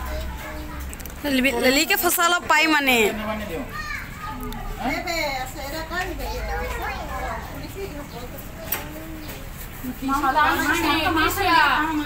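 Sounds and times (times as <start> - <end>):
voices of people and children chattering: 0.0 - 12.0.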